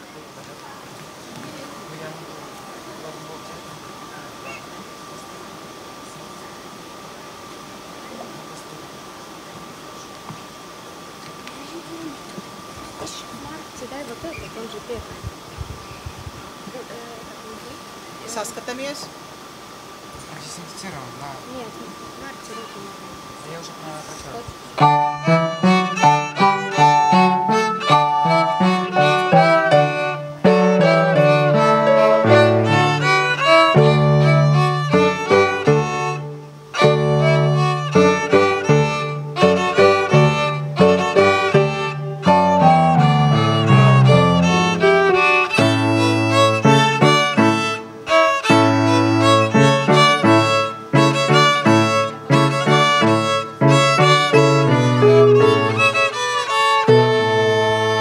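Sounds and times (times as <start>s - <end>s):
violins and keyboard trio: 24.8s - 58.0s.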